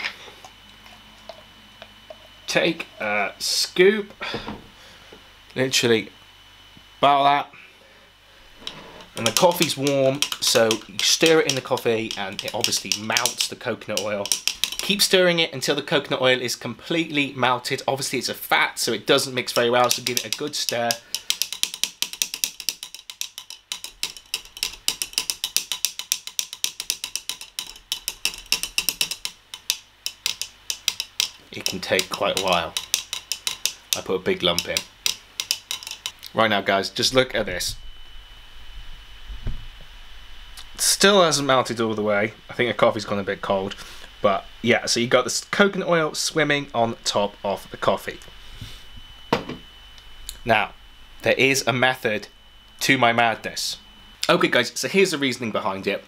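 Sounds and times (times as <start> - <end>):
small clicks and taps: 9.2 - 14.9, 19.6 - 36.3.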